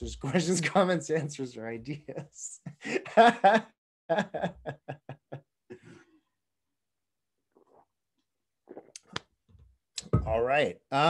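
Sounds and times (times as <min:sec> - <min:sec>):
man chuckling: 0:02.6 - 0:06.0.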